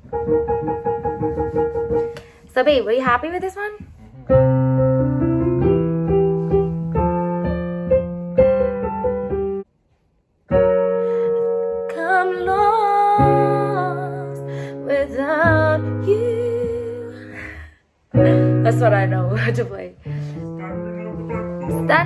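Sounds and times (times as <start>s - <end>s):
piano music: 0.0s - 2.4s, 4.0s - 9.7s, 10.5s - 22.0s.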